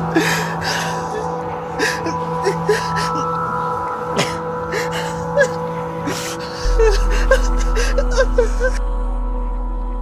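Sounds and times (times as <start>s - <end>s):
film score drone tones: 0.0s - 10.0s
deep bass note: 6.7s - 7.7s.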